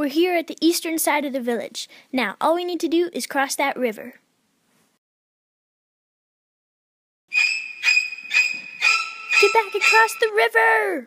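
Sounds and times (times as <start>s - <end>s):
high-pitched ringing tones: 7.3s - 10.5s.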